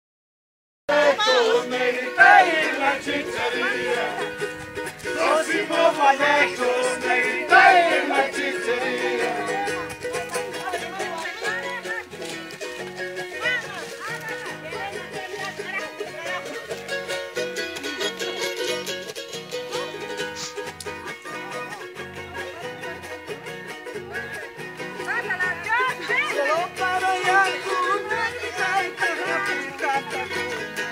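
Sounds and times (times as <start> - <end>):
voices singing: 0.9 - 12.2, 25.3 - 30.9
strummed guitar and string instruments: 0.9 - 30.9.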